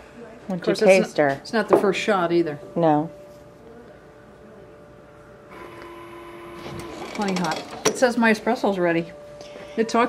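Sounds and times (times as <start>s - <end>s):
espresso machine humming: 5.5s - 7.8s.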